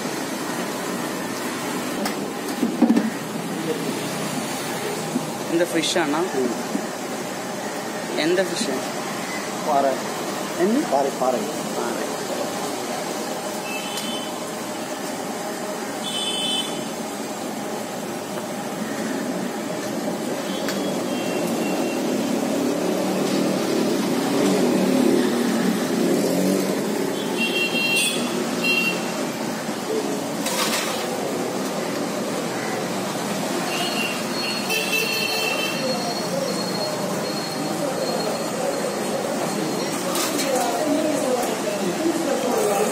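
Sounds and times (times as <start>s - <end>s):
motorbike engines passing: 0.0s - 16.2s, 16.8s - 42.9s
oil sizzling deep-frying: 28.3s - 34.5s.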